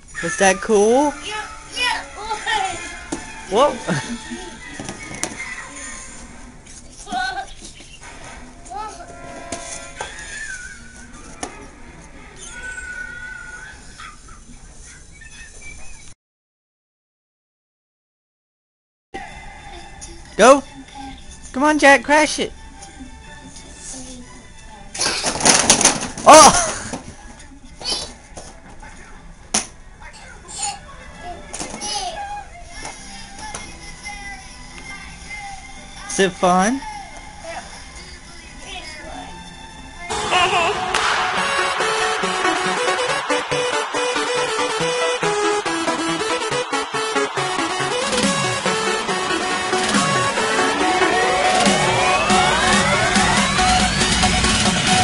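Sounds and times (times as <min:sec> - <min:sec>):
toddler squealing and babbling: 0:05.0 - 0:06.2, 0:10.0 - 0:11.0, 0:12.4 - 0:14.3
cardboard blocks hitting floor: 0:25.0 - 0:27.1.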